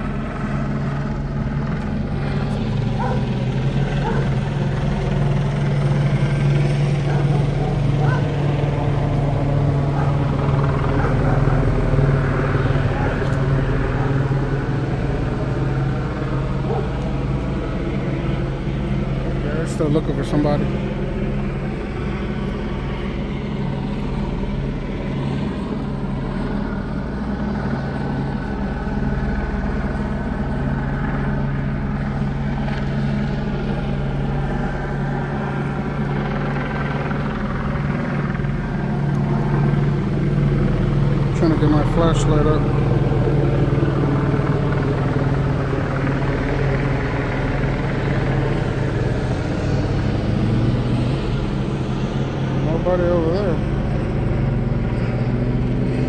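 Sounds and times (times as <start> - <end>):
helicopter rotor drone: 0.0 - 56.0.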